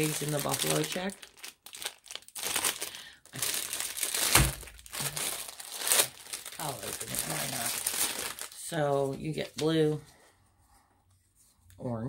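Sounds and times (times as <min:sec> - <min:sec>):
plastic packaging crinkling: 0:00.0 - 0:10.0
thump: 0:04.4 - 0:04.6.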